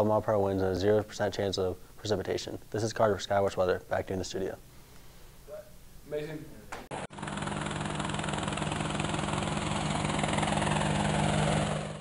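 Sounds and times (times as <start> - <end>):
drone propellers buzzing: 7.1 - 12.0.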